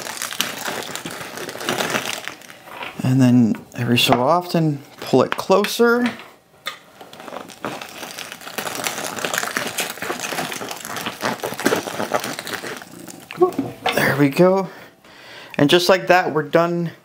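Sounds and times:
sausage stuffer squishing: 0.0s - 3.1s, 6.6s - 14.5s.

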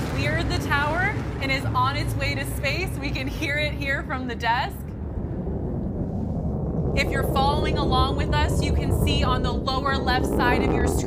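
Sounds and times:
distant rocket engine rumbling: 0.0s - 11.0s.

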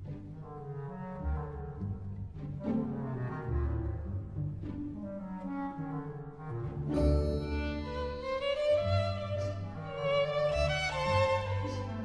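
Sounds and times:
orchestra playing a tango: 0.0s - 12.0s.

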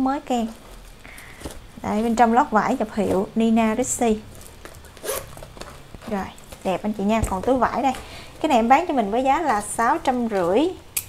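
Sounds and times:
metal zipper being pulled shut: 4.7s - 5.8s.

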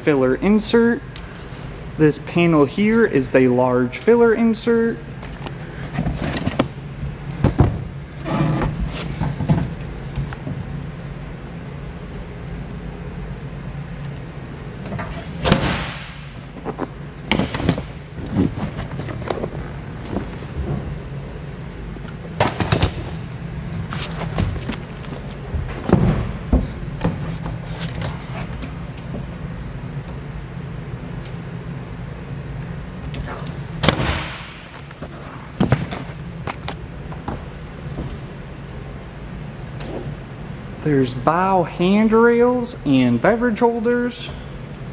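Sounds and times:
steady low hum: 0.0s - 44.9s.

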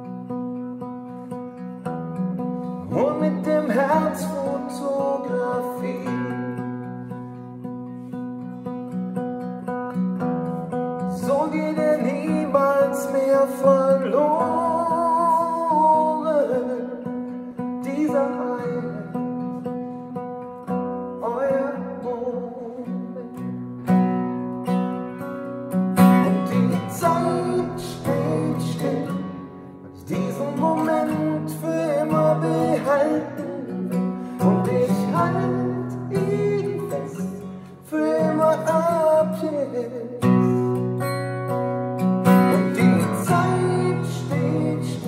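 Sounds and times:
acoustic guitar: 0.0s - 45.0s
man singing: 2.8s - 6.9s, 11.0s - 19.9s, 21.1s - 23.5s, 26.0s - 40.8s, 42.4s - 45.0s.

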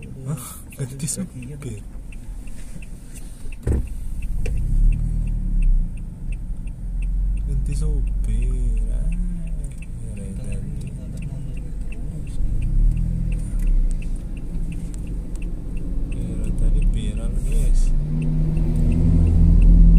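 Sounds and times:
faint regular ticking: 0.0s - 19.9s
truck diesel engine droning: 3.5s - 19.9s.

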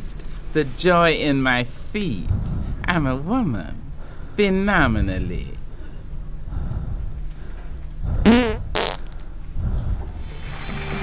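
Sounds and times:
fart-like wobbling buzz: 8.2s - 9.2s.

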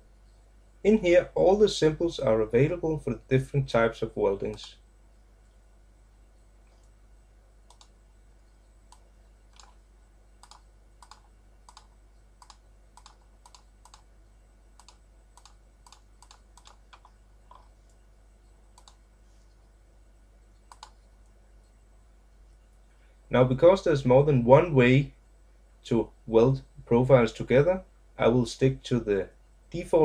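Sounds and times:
computer mouse clicks: 7.6s - 9.8s, 10.4s - 14.1s, 14.8s - 19.6s, 20.5s - 21.1s.

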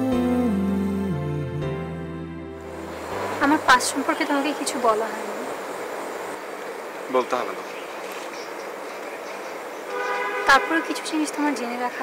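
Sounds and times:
steady horn-like tone: 2.5s - 6.4s, 9.9s - 11.2s.

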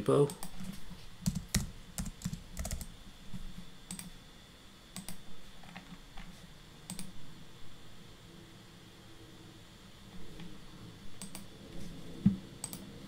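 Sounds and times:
typing on computer keyboard: 1.2s - 2.9s.

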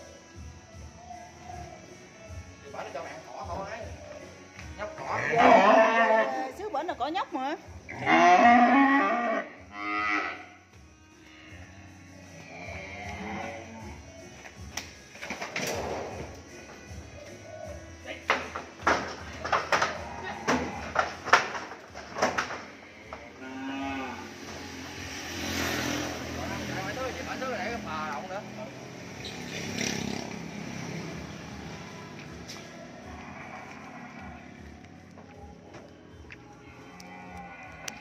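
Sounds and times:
young cattle mooing: 5.2s - 6.5s, 7.9s - 10.6s, 12.4s - 14.0s, 23.3s - 24.4s, 33.0s - 34.8s, 36.8s - 38.0s.

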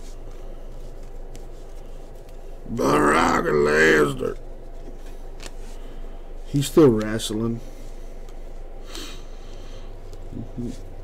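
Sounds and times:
man's wordless vocal sound: 2.7s - 4.4s.

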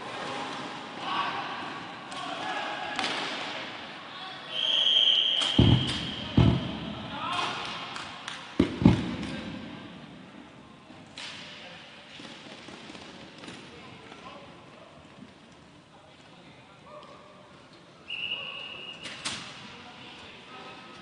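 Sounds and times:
heavy thuds echoing: 5.5s - 7.2s, 8.6s - 9.8s.

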